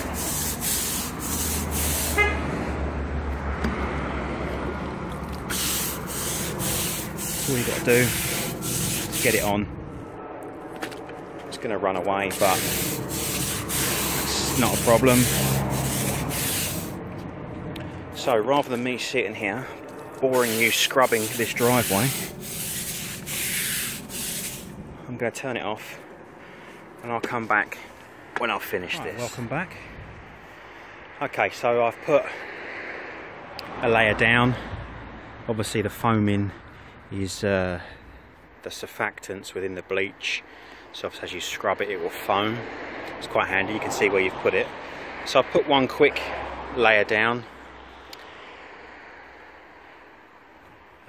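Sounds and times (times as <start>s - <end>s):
broom scrubbing wet stone: 0.0s - 2.2s, 5.4s - 9.6s, 12.3s - 17.0s, 20.3s - 24.7s.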